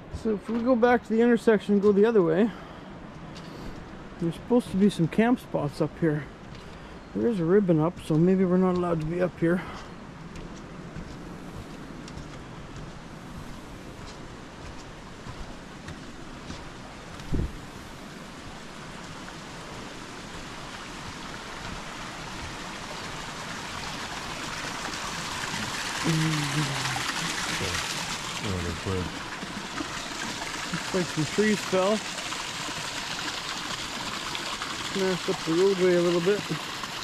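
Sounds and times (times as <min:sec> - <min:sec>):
stream water rushing: 0:00.0 - 0:37.0.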